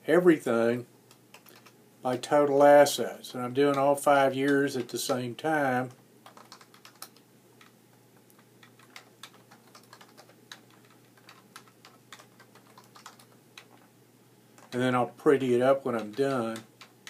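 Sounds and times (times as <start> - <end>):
faint low hum: 0.0 - 17.0
computer keyboard typing: 1.3 - 2.6, 5.9 - 13.9, 14.6 - 17.0.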